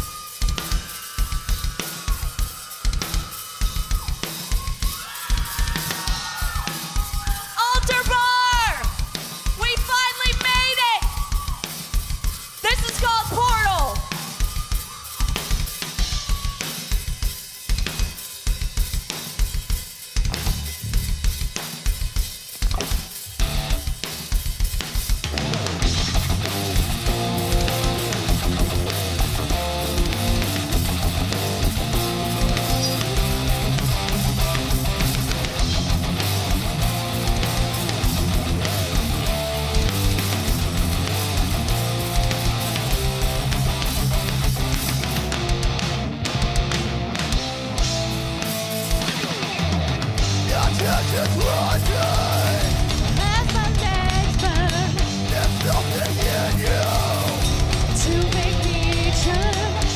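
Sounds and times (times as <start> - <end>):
hard rock band playing: 0.0 - 59.9
electric guitars and bass: 20.2 - 21.5, 22.7 - 24.0, 25.2 - 59.9.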